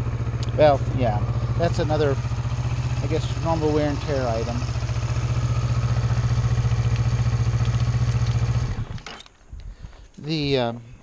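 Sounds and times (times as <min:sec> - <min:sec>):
motorcycle engine idling: 0:00.0 - 0:09.0.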